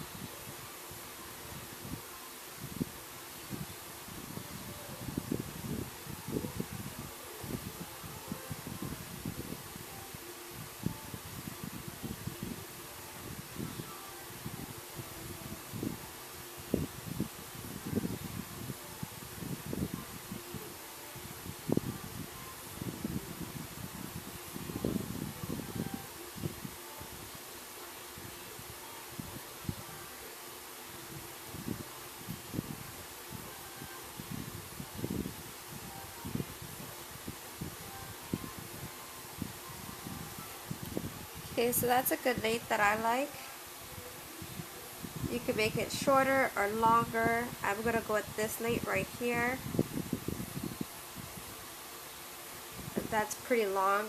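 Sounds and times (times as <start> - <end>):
steady faint hiss: 0.0 - 54.0.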